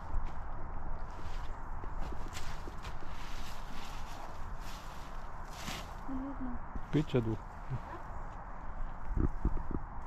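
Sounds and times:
woman speaking: 6.1 - 6.6.

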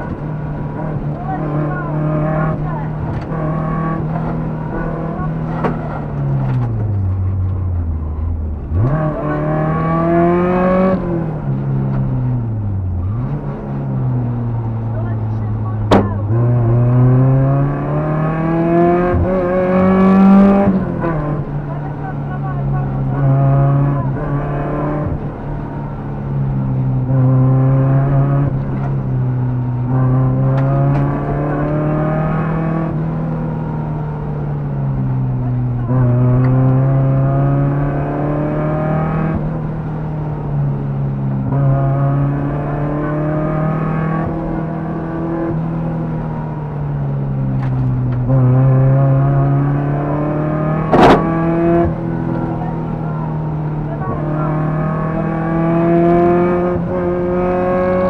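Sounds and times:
rally car engine revving: 0.0 - 58.0.

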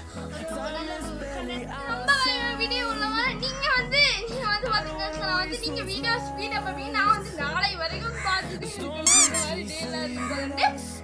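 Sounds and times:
background music with steady beat: 0.0 - 11.0
boy talking excitedly: 0.8 - 8.7.

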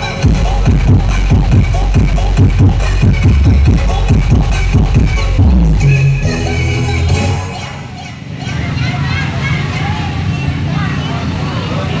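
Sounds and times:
crowd chatter: 0.0 - 12.0
loud low rumble: 0.2 - 8.0.

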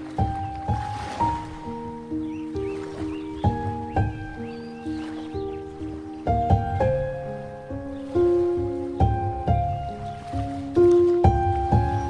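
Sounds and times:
ocean waves: 0.0 - 12.0
slow gentle piano melody: 0.0 - 12.0.

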